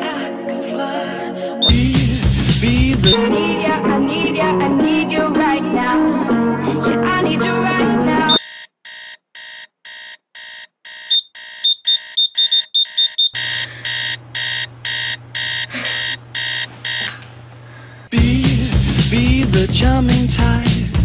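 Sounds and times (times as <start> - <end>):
alarm clock beeping: 8.3 - 17.1.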